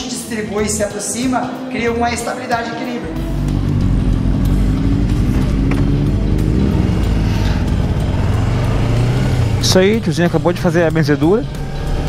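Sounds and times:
motorcycle engine revving: 0:03.0 - 0:12.0.

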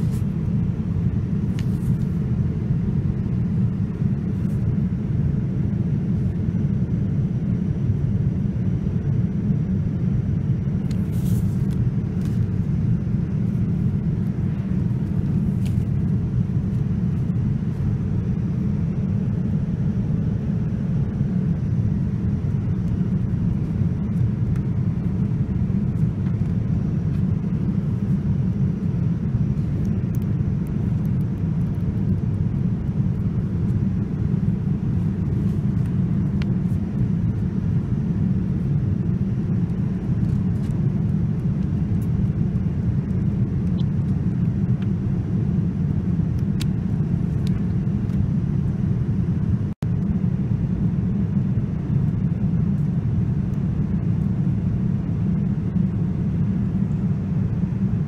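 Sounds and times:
airliner cabin rumble: 0:00.0 - 0:58.0.

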